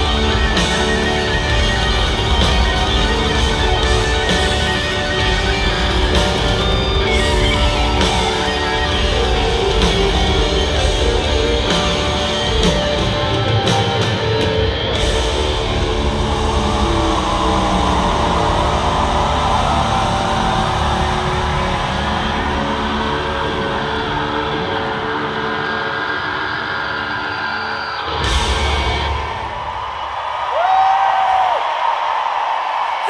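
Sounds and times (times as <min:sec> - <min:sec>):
rock band playing live: 0:00.0 - 0:29.9
crowd cheering: 0:00.0 - 0:33.0
person whooping: 0:16.0 - 0:22.8, 0:30.5 - 0:31.7.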